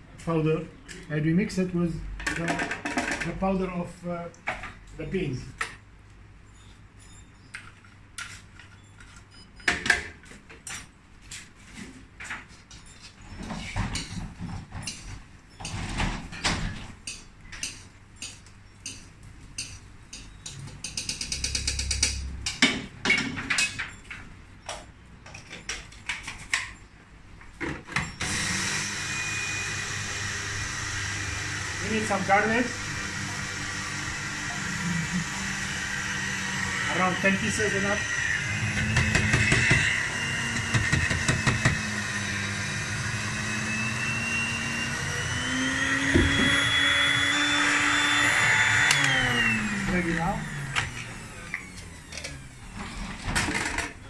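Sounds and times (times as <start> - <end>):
electric grinder running: 28.2 - 53.0
electric blender motor whining: 28.2 - 53.9.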